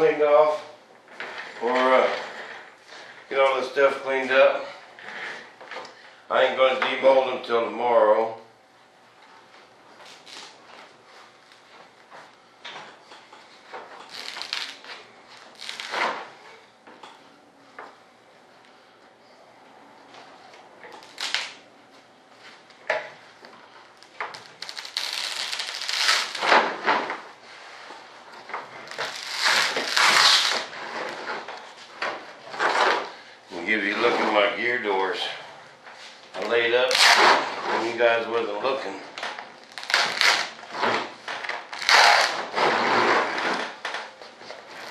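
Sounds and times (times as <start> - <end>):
plastic film rustling and crinkling: 14.0 - 16.2, 23.9 - 27.0, 28.8 - 31.5, 39.5 - 43.8.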